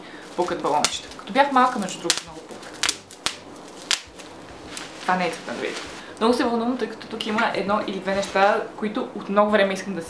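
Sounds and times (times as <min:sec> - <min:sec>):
bubble wrap handled: 0:00.1 - 0:06.1.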